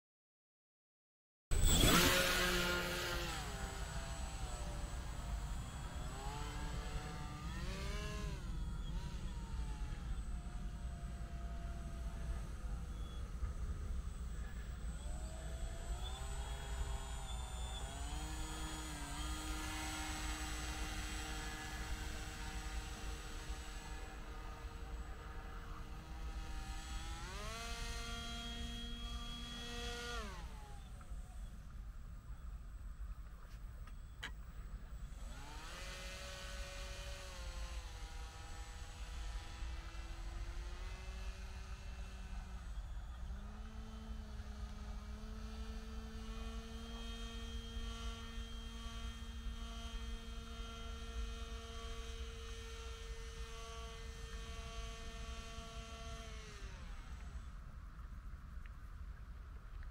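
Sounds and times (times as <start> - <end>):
model motor and propeller: 1.6 - 59.9.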